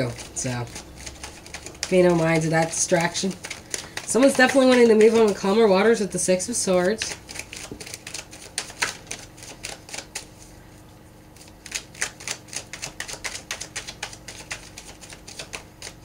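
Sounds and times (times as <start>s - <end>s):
cards being shuffled: 0.0s - 5.7s, 6.8s - 10.5s, 11.4s - 16.0s.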